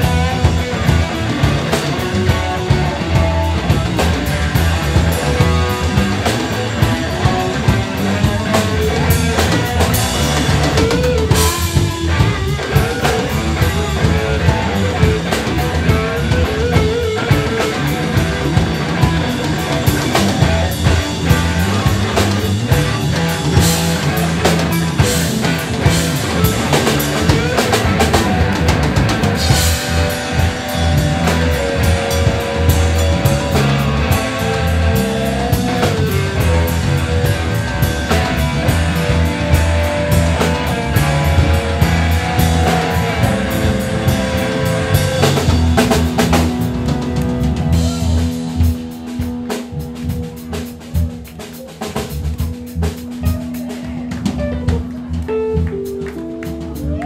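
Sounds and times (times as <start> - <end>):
live rock and roll band: 0.0 - 57.0.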